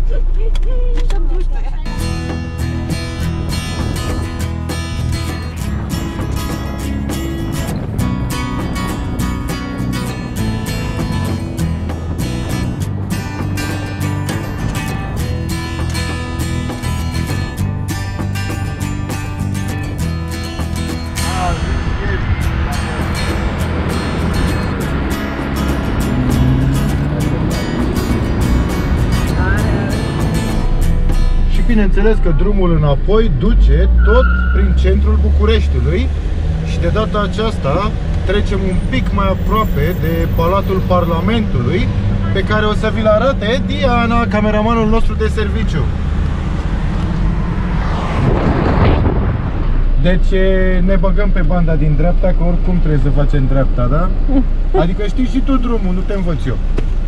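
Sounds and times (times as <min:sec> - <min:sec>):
car engine and road rumble: 0:00.0 - 0:57.0
strummed acoustic folk guitar: 0:01.8 - 0:31.6
rush of noise: 0:19.6 - 0:42.2, 0:45.1 - 0:51.4.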